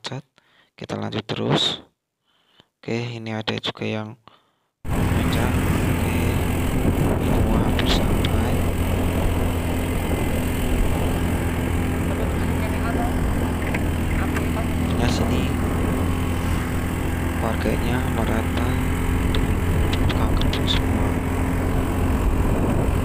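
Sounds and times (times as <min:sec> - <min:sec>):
wind rush: 0:04.9 - 0:17.4, 0:18.9 - 0:23.0
engine drone: 0:04.9 - 0:23.0.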